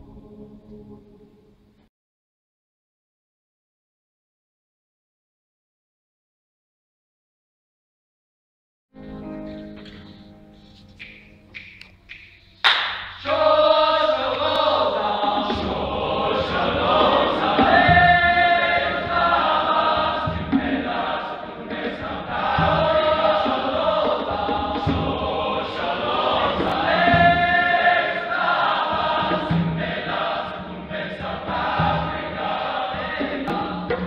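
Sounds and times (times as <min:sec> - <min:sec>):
conga drums: 0:11.0 - 0:34.0
men's choir singing: 0:13.0 - 0:34.0.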